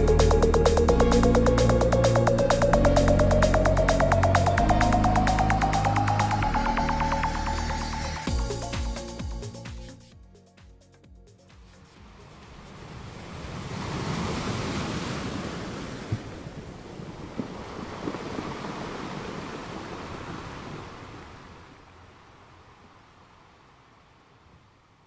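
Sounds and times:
wind: 11.4 - 25.0
sea waves: 11.8 - 24.6.

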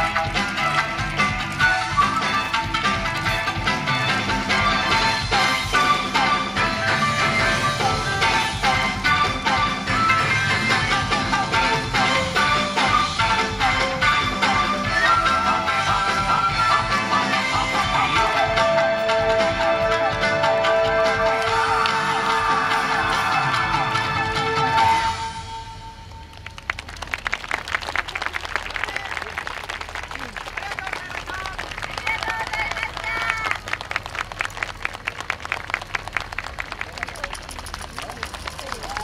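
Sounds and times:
audience clapping: 0.0 - 12.9, 21.2 - 23.7, 26.2 - 39.0
dance music: 0.0 - 25.3.

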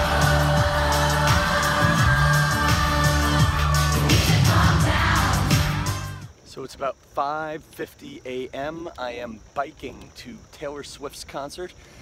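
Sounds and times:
audience cheering: 0.0 - 6.2
live pop music over sound system: 0.0 - 6.3.

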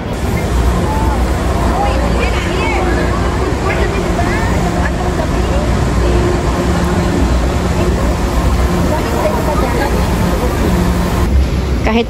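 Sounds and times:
distant voices: 0.0 - 12.0
loud steady rumble and hum: 0.0 - 12.0.

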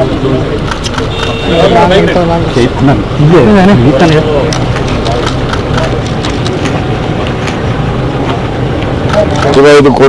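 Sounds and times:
sharp clicks: 0.6 - 1.4, 8.9 - 9.7.

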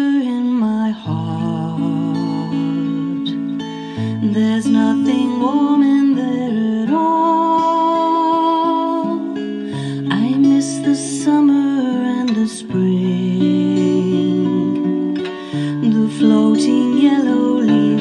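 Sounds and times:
acoustic guitar strumming: 0.0 - 18.0
woman singing: 0.0 - 18.0.

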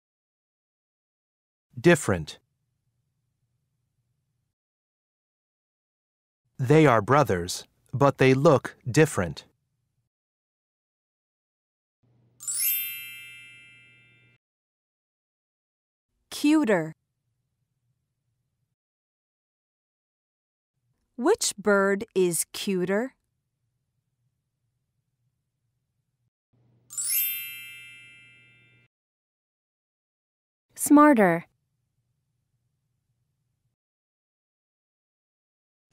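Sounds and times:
bright chime: 12.4 - 14.4, 26.9 - 28.9
bright chime ding: 26.9 - 28.9.

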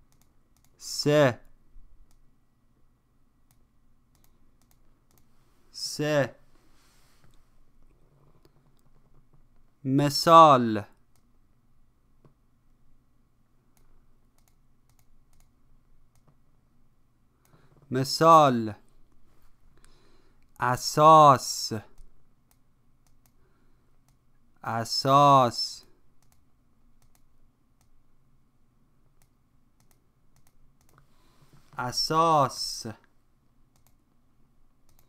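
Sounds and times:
computer mouse clicks: 0.0 - 0.8, 3.5 - 5.3, 13.7 - 16.4, 22.0 - 23.4, 26.2 - 26.4, 27.0 - 28.0, 29.1 - 31.1, 33.7 - 34.0.

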